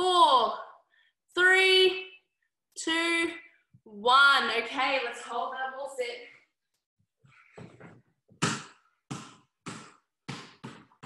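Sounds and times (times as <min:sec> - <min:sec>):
basketball bouncing on floor: 0:07.8 - 0:11.0.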